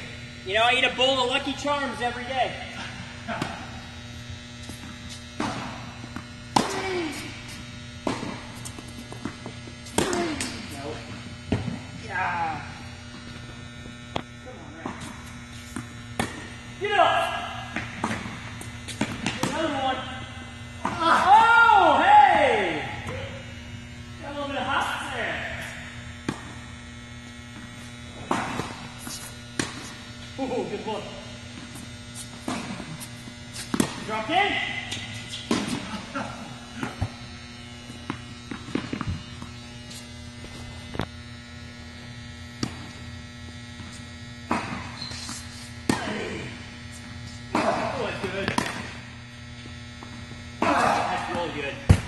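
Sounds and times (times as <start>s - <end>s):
steady low hum: 0.0s - 52.0s
tennis ball hit by rackets: 5.4s - 6.9s, 15.8s - 16.5s, 17.7s - 19.6s, 28.2s - 28.9s, 32.4s - 32.9s, 33.6s - 34.1s, 35.5s - 35.9s, 44.5s - 44.9s, 47.5s - 48.9s.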